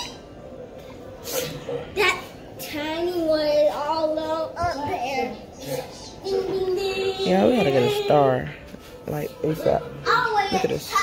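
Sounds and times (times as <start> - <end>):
child singing: 2.6 - 5.4.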